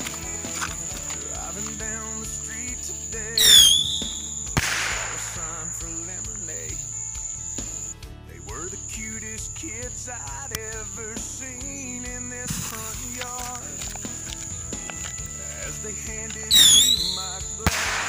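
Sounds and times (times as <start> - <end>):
country song with male singer: 0.0 - 18.0
bottle rocket whistle: 3.4 - 5.8, 16.5 - 18.0
sharp pop: 3.5 - 5.5, 17.7 - 18.0.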